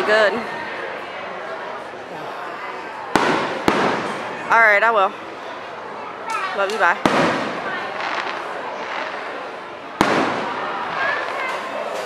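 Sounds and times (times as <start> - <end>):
firework shells bursting: 3.2 - 4.3, 10.0 - 12.0.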